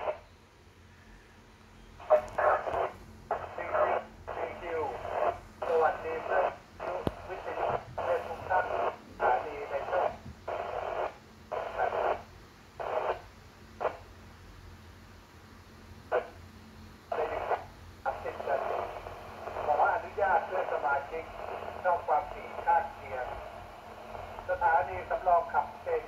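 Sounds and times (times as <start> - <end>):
voice over radio speaker: 2.0 - 10.9, 11.6 - 12.2, 17.1 - 26.0.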